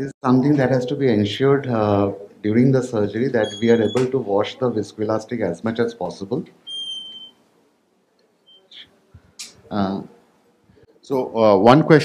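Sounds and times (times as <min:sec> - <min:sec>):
high electronic beep: 0:03.4 - 0:04.1, 0:06.7 - 0:07.4.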